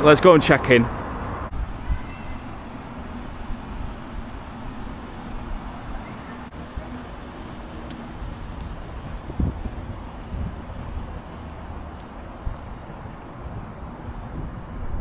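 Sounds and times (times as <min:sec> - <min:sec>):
wind buffeting microphone: 0:00.9 - 0:15.0.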